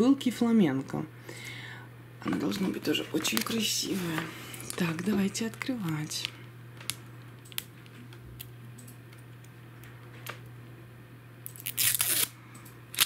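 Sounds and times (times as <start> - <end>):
plastic film crinkling rip: 11.5 - 12.3.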